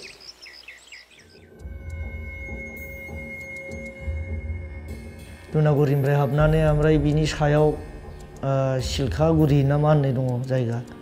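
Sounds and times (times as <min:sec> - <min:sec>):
bird chirping: 0:00.0 - 0:04.3, 0:06.2 - 0:09.7
low music drone: 0:01.4 - 0:11.0.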